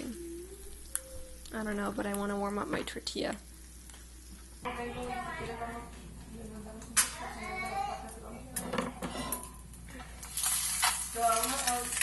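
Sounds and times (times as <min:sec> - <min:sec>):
utensils clinking: 0:08.0 - 0:12.0
pan scraping on stove: 0:08.8 - 0:09.6.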